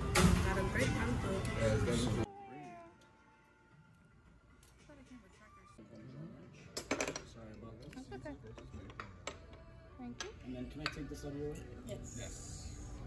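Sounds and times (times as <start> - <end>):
forks and dishes clinking: 6.7 - 9.4.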